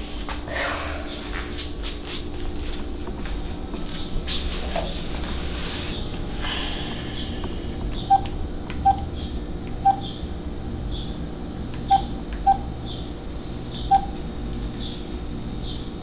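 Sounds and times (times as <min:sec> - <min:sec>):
low steady hum: 0:00.0 - 0:16.0
phone keypad beeps: 0:08.1 - 0:09.1, 0:09.8 - 0:10.1, 0:11.9 - 0:12.7, 0:13.8 - 0:14.2.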